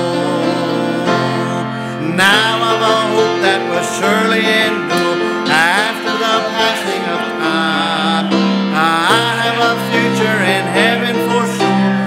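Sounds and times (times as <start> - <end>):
congregation singing a hymn: 0.0 - 12.0
instrumental accompaniment: 0.0 - 12.0.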